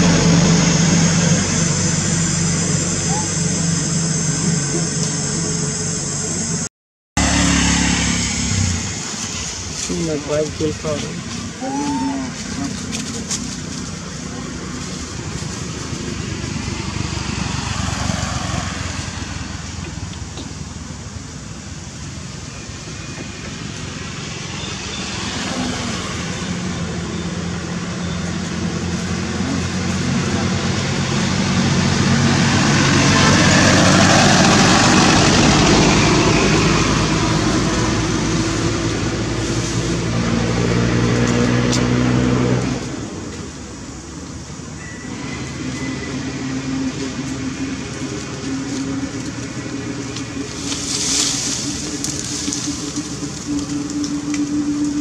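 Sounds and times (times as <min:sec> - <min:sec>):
faint engine hum: 0:00.0 - 0:55.0
vehicle engine humming: 0:00.0 - 0:55.0.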